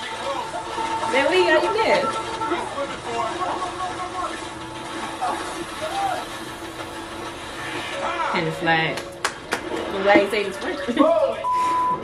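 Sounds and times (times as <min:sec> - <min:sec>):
background music: 0:00.0 - 0:12.0
television voices: 0:00.0 - 0:12.0.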